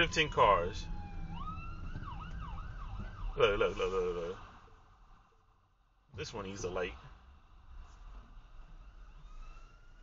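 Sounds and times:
road rumble inside car: 0.0s - 10.0s.

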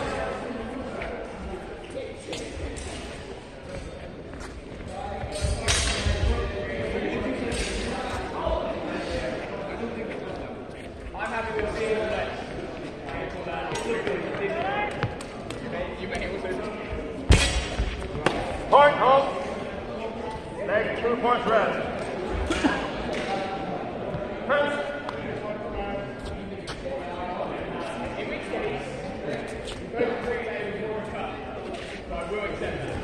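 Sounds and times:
fencers' footwork: 0.7s - 18.8s.

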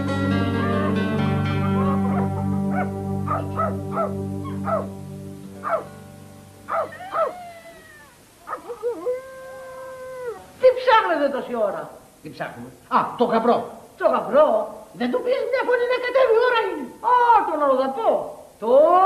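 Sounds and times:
background music: 0.0s - 7.2s
dog howling: 1.6s - 4.9s, 5.6s - 5.9s, 6.7s - 10.6s
dog yelping: 1.6s - 4.9s, 5.6s - 5.9s, 6.7s - 10.5s.

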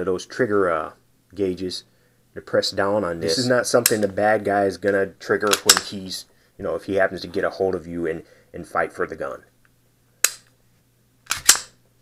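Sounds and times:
pistol action clicking: 5.5s - 5.9s, 10.2s - 10.5s, 11.2s - 11.8s.

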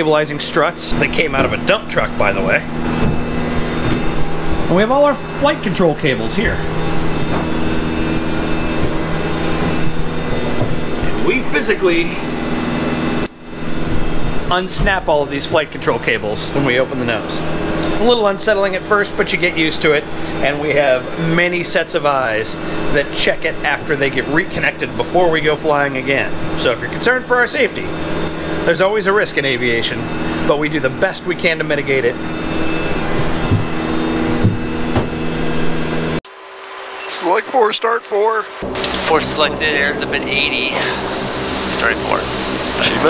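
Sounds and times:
machine drone: 0.0s - 43.0s
mechanical fan hum: 0.0s - 43.0s
dull low thumps: 1.1s - 15.3s, 32.4s - 35.7s.

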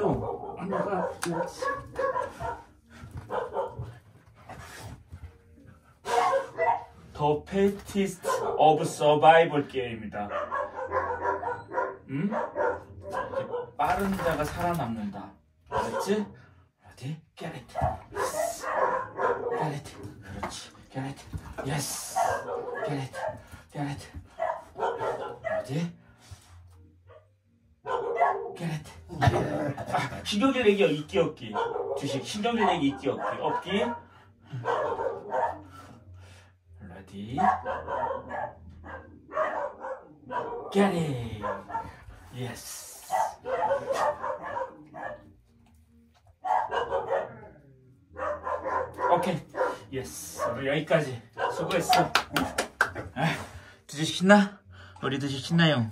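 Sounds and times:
man's voice: 0.0s - 1.9s, 15.7s - 24.3s, 28.6s - 34.0s, 37.0s - 37.7s, 40.5s - 44.1s
dog barking: 0.0s - 4.0s, 6.0s - 7.0s, 8.2s - 8.8s, 10.2s - 14.2s, 15.7s - 16.3s, 17.8s - 19.8s, 22.1s - 23.5s, 24.4s - 25.8s, 27.1s - 28.6s, 31.5s - 35.8s, 37.4s - 40.8s, 41.4s - 42.1s, 43.0s - 45.4s, 46.4s - 50.6s, 51.3s - 52.7s.

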